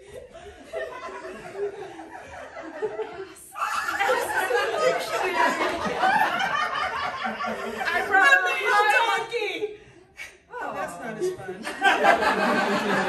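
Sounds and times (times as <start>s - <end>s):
audience laughing: 0.0s - 9.2s, 11.5s - 13.0s.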